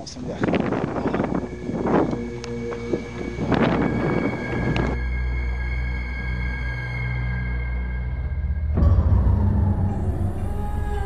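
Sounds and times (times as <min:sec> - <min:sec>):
wind buffeting microphone: 0:00.0 - 0:05.0
steady-toned music: 0:00.0 - 0:11.0.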